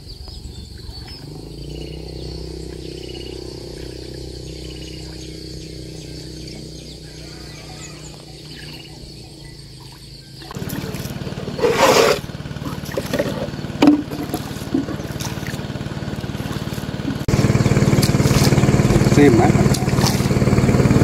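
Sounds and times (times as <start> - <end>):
faint bird chirps: 0.0 - 10.6
boat motor running: 0.0 - 21.0.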